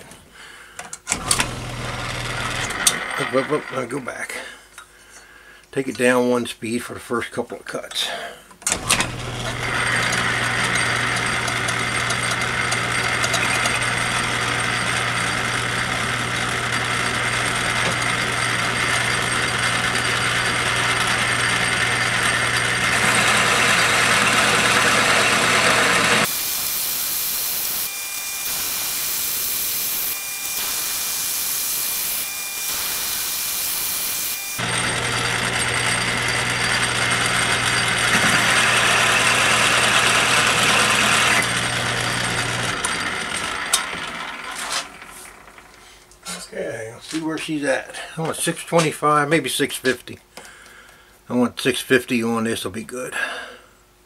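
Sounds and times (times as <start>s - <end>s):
lathe tool cutting metal: 1.1s - 4.1s, 8.7s - 45.7s
metal lathe humming: 1.1s - 4.1s, 8.7s - 45.8s
high hiss: 26.3s - 34.6s.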